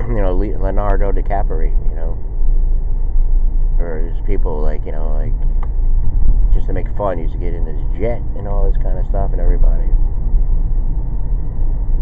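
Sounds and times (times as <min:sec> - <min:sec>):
car road noise: 0:00.0 - 0:12.0
tyres and engine rumbling: 0:00.0 - 0:12.0.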